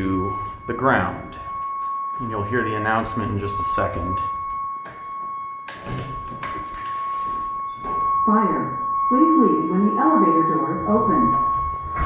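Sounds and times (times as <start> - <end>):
steady high-pitched tone: 0.0 - 12.0.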